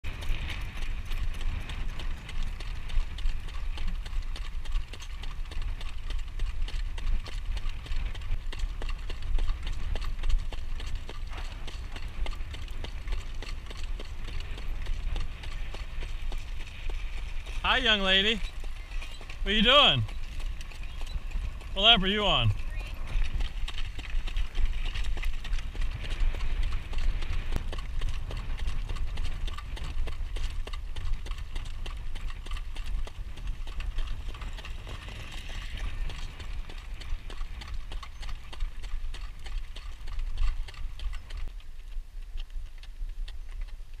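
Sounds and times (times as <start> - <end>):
horse hooves clip-clopping on pavement: 0.0 - 44.0.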